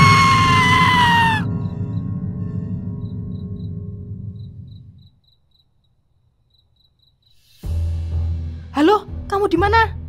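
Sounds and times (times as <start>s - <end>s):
crickets chirping: 0.5s - 7.6s
background music: 7.4s - 10.0s.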